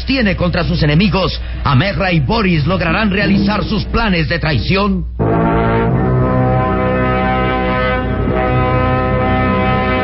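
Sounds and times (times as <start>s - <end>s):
dramatic brass chords: 2.8s - 10.0s.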